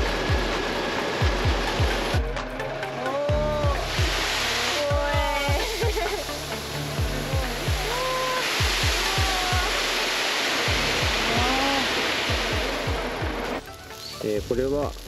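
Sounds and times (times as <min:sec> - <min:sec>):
background music with beat: 0:00.0 - 0:10.0, 0:10.7 - 0:15.0.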